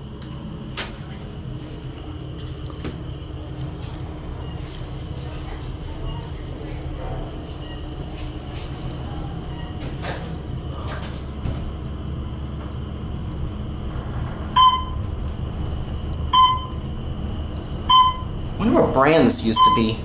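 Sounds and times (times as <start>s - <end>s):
elevator running with low hum: 0.0s - 20.0s
short electronic beeps: 14.6s - 15.0s, 16.4s - 16.7s, 17.9s - 18.3s, 19.6s - 20.0s.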